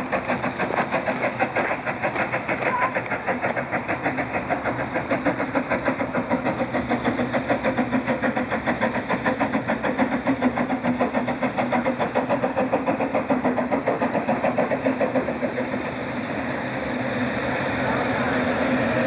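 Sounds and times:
steam locomotive chuffing: 0.0s - 19.0s.

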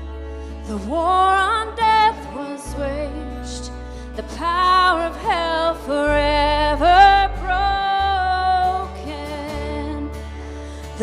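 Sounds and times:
acoustic guitar: 0.0s - 11.0s
low bass notes: 0.0s - 11.0s
violin: 0.0s - 11.0s.

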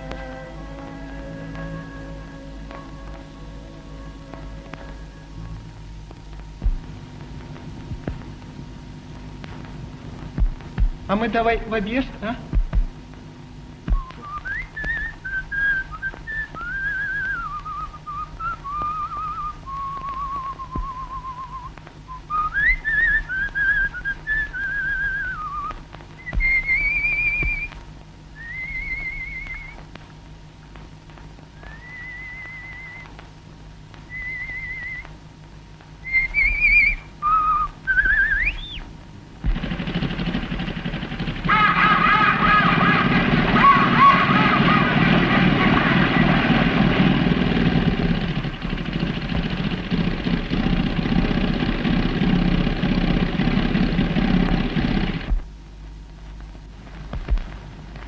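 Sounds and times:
person whistling a tune: 14.0s - 27.7s, 28.4s - 29.8s, 31.7s - 33.0s, 34.1s - 35.1s, 36.0s - 38.8s.

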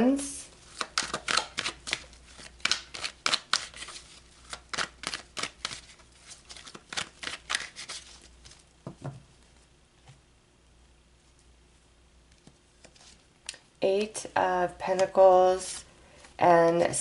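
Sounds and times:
cards being shuffled: 0.7s - 9.0s.

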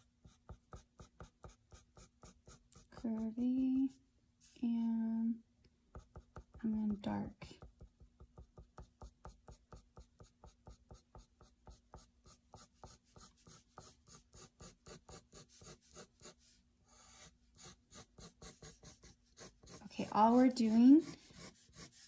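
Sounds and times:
pencil scratching on paper: 0.0s - 4.6s, 5.9s - 6.6s, 7.4s - 22.0s.

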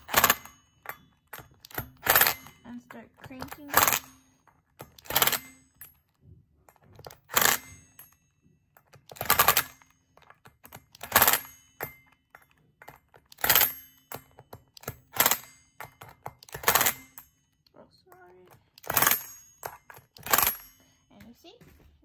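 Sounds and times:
impact driver hammering: 0.0s - 17.4s, 18.4s - 21.0s.

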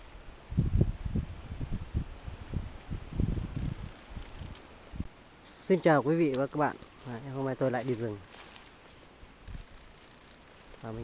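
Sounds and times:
wind buffeting microphone: 0.4s - 5.1s, 9.4s - 9.8s.

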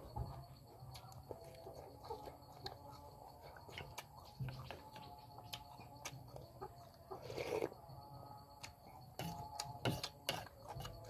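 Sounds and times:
person slurping: 7.2s - 7.7s
metal spoon scraping ceramic bowl: 9.1s - 11.0s.

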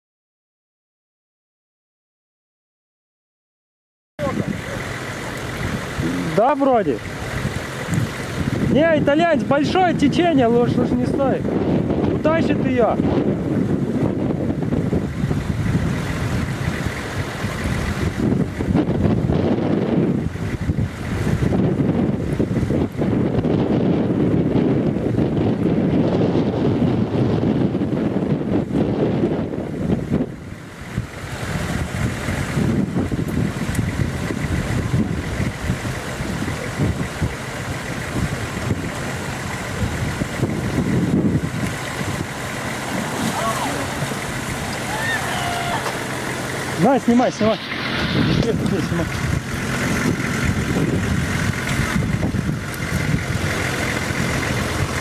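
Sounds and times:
river water rushing: 4.2s - 11.6s, 14.7s - 18.9s, 30.4s - 55.0s
car engine: 4.2s - 55.0s
wind buffeting microphone: 4.2s - 55.0s.

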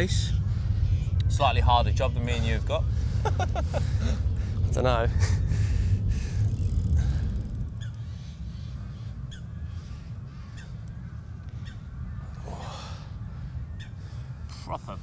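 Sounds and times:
fighter jet rumble: 0.0s - 15.0s.

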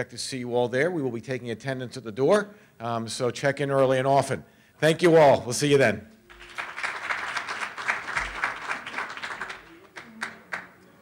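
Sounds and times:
audience applauding: 6.3s - 10.8s.

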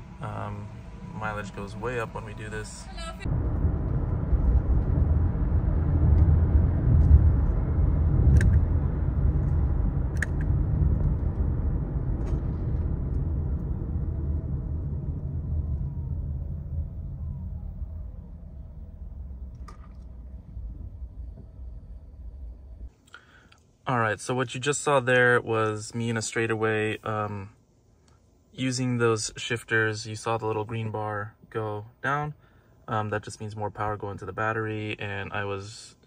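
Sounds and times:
faint falling whine: 0.0s - 22.9s
road and tyre rumble: 0.0s - 22.9s.

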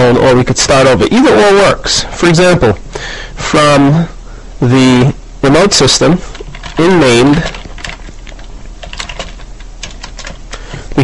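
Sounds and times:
keyboard keys clicking: 6.4s - 10.6s.

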